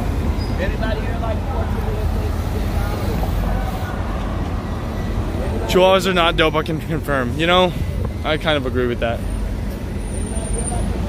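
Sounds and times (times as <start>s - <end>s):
bus running: 0.0s - 11.0s
cars passing: 0.0s - 11.0s.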